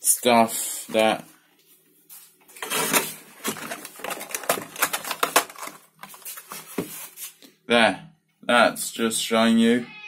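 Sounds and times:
bottles clicking and rattling: 2.6s - 6.4s.

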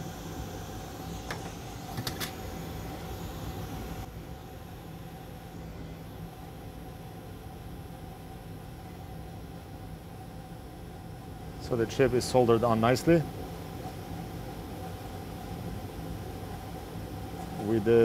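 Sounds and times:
fume extractor fan hum: 0.0s - 18.0s.

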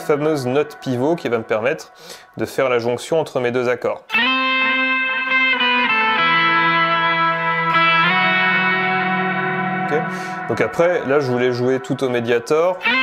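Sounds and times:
electric guitar slow lead: 0.0s - 2.4s, 4.1s - 13.0s.

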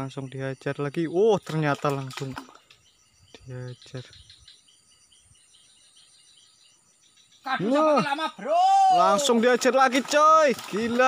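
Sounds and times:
faint insects chirping: 0.0s - 11.0s.

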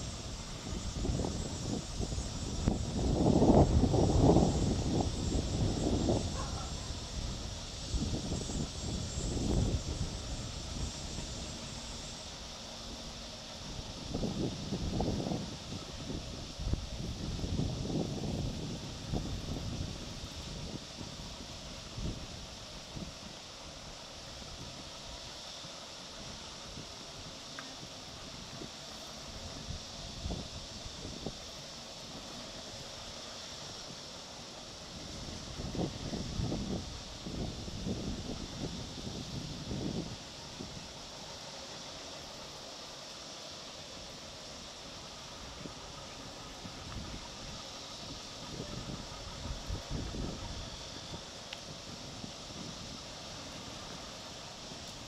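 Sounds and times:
wind gusting on microphone: 0.0s - 25.3s, 26.2s - 41.9s, 44.4s - 55.0s
high-pitched outdoor hiss: 0.0s - 55.0s.

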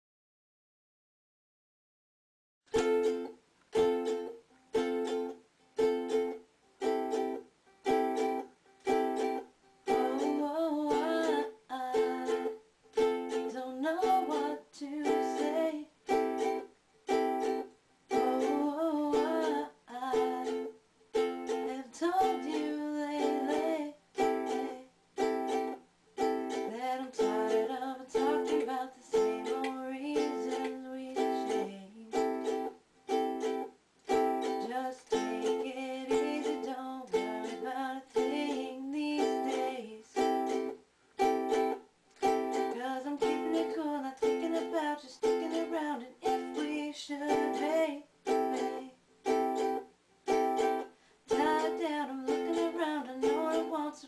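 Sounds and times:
ukulele strumming: 2.7s - 54.0s
woman singing: 8.1s - 16.6s, 17.3s - 20.7s, 21.4s - 32.7s, 33.5s - 40.7s, 41.5s - 54.0s.

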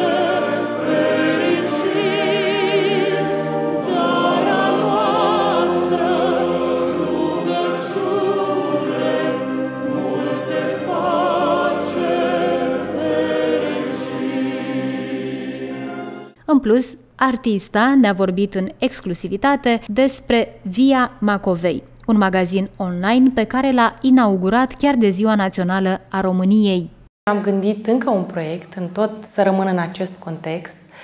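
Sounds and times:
choir singing: 0.0s - 16.4s.

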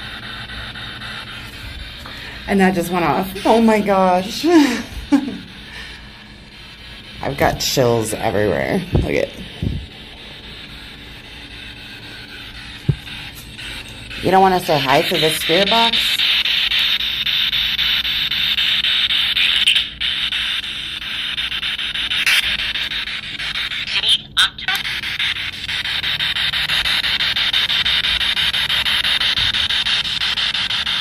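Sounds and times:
choppy radio static: 0.0s - 31.0s.

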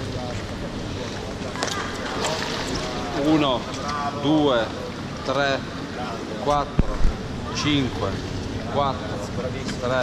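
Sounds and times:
water splashing in pool: 0.0s - 6.0s.

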